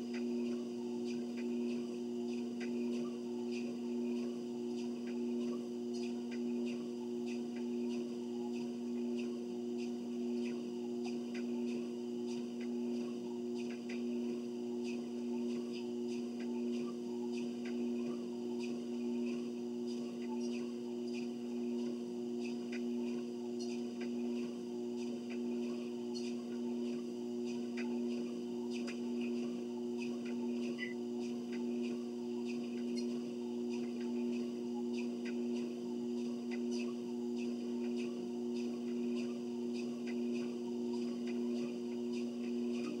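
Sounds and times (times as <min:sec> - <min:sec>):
treadmill motor hum: 0:00.0 - 0:43.0.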